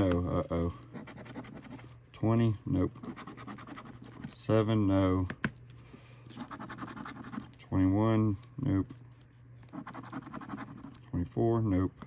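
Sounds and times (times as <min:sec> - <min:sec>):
scratching lottery ticket: 0:00.8 - 0:01.9, 0:03.0 - 0:04.4, 0:06.3 - 0:07.7, 0:09.6 - 0:11.1.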